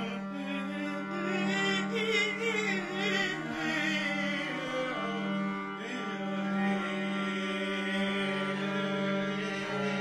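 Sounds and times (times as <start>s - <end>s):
viola and double bass folk tune: 0.0s - 10.0s.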